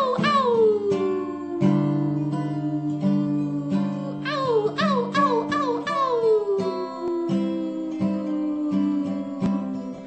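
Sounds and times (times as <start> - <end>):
acoustic guitar strumming: 0.0 - 10.0
woman singing a held note: 0.0 - 10.0.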